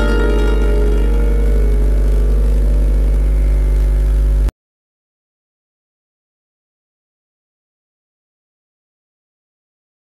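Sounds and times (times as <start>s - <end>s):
santoor strings ringing: 0.0s - 4.5s
steady low hum: 0.0s - 4.5s.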